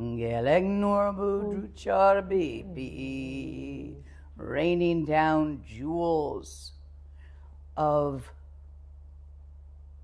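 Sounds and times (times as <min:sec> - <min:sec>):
woman chanting: 0:00.0 - 0:06.7, 0:07.8 - 0:08.4
low electrical hum: 0:00.0 - 0:10.0.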